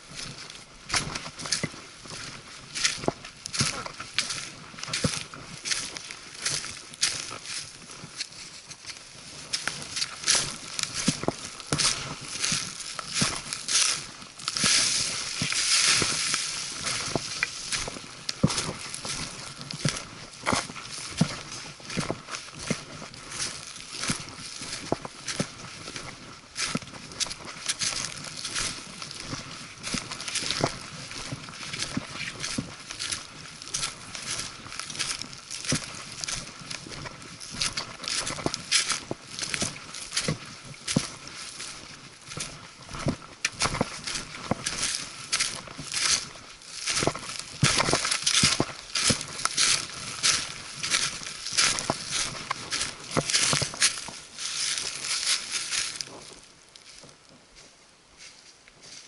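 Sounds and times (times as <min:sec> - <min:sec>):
footsteps crunching dry leaves: 0:00.0 - 0:59.0
hiking poles tapping ground: 0:00.0 - 0:59.0.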